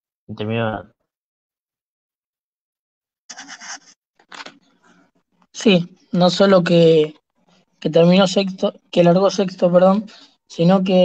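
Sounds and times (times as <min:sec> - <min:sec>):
brief scratching noises: 0:03.3 - 0:04.7.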